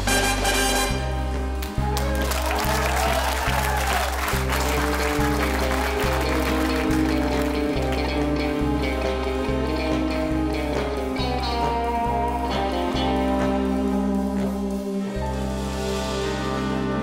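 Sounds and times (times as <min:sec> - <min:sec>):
big band playing: 0:00.0 - 0:17.0
electric guitar playing: 0:00.0 - 0:17.0.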